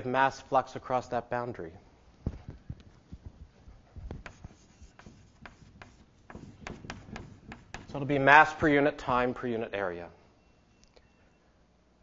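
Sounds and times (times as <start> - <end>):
chalk tapping and scraping on chalkboard: 4.0 - 8.3.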